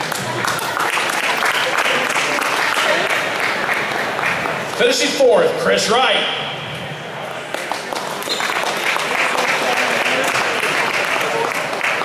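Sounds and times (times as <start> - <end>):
audience applause: 0.0 - 4.7, 7.5 - 12.0.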